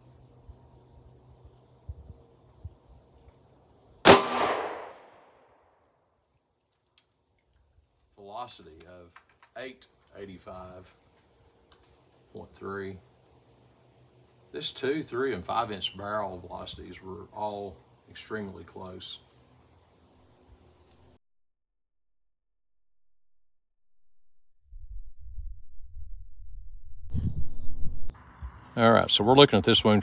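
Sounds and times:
crickets chirping: 0.0s - 4.0s, 5.0s - 21.2s, 27.1s - 29.8s
revolver shot: 4.1s - 5.3s.

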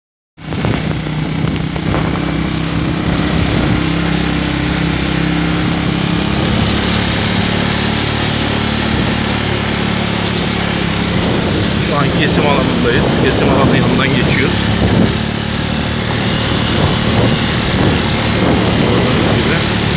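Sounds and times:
motorcycle engine running: 0.4s - 19.9s
wind and road noise: 0.4s - 19.9s.

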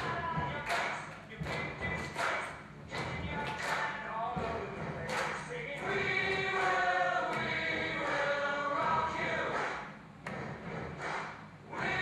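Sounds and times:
voices singing together: 0.0s - 9.9s, 11.7s - 12.0s.

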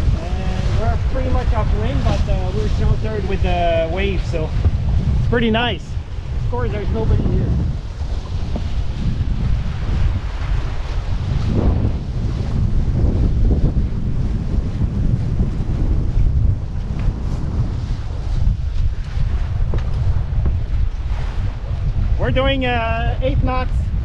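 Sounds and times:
water rushing around boat hulls: 0.0s - 24.0s
wind buffeting microphone: 0.0s - 24.0s.

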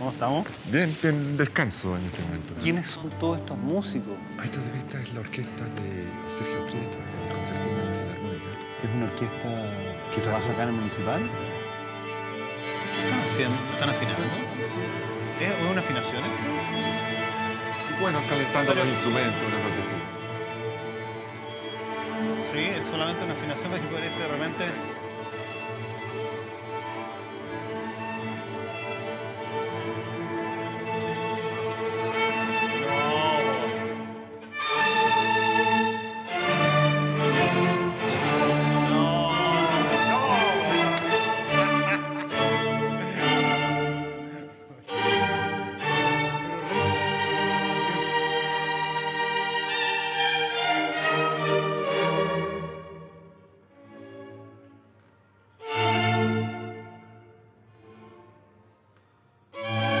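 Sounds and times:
string orchestra playing chords: 0.0s - 60.0s.

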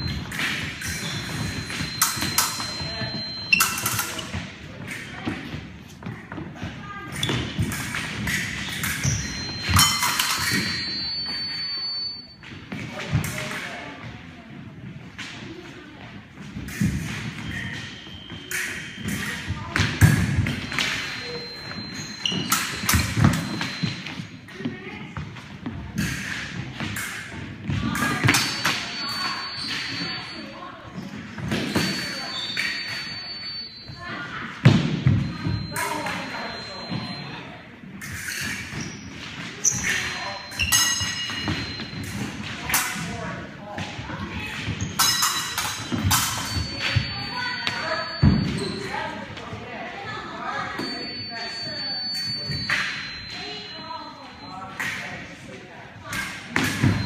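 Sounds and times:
thin high ringing tones: 0.0s - 5.2s, 7.2s - 12.6s, 16.9s - 24.7s, 26.0s - 43.2s, 44.1s - 57.0s.

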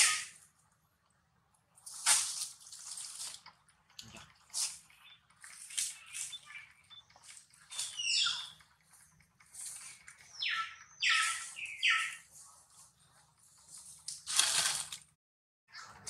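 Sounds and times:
harsh animal calls: 0.0s - 0.4s, 4.1s - 12.4s.

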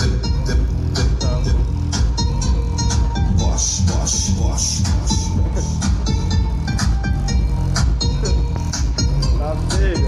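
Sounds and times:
loud bass-heavy music: 0.0s - 10.0s.

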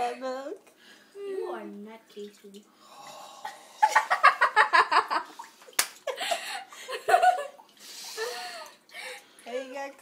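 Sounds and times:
liquid gurgling into glass: 2.8s - 3.9s.

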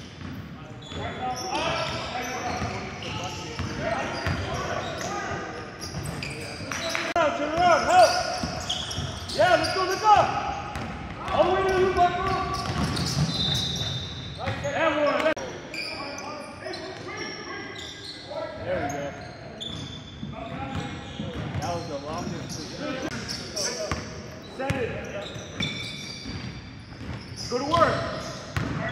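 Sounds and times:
sneaker squeaks: 0.0s - 28.9s
players calling: 0.8s - 19.7s.

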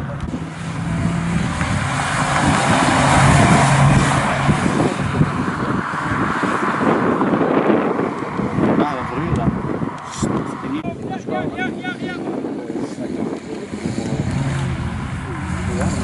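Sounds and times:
car driving past: 0.3s - 10.8s, 13.4s - 16.0s.

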